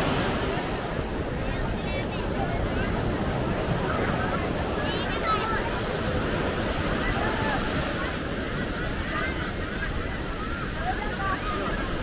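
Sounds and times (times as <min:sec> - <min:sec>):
surf breaking on beach: 0:00.0 - 0:12.0.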